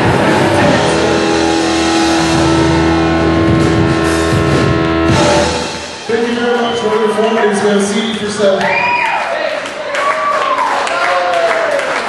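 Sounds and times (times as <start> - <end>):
punk rock band playing: 0.0 - 7.9.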